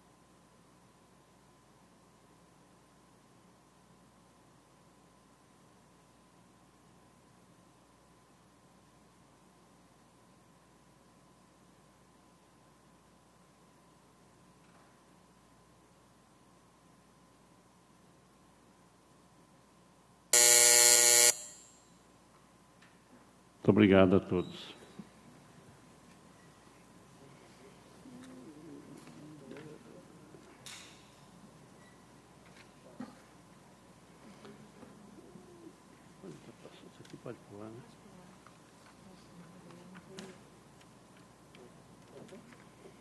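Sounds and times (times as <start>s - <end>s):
electric buzzer: 20.4s - 21.8s.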